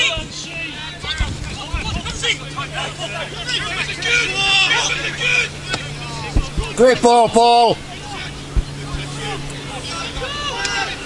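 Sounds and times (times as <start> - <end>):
people shouting: 0.0 - 11.0
steady low hum: 0.0 - 11.0.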